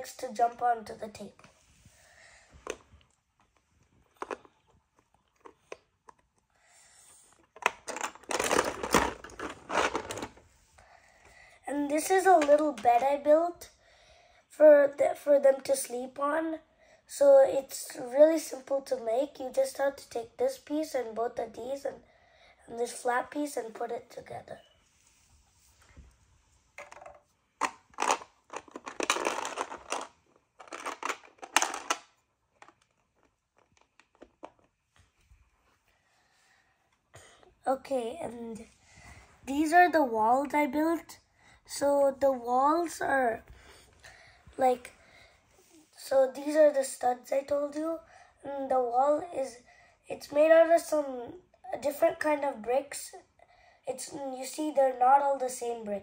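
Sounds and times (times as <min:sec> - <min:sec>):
plastic bricks clicking and rattling: 0:04.1 - 0:04.6, 0:07.4 - 0:10.4, 0:26.8 - 0:34.7.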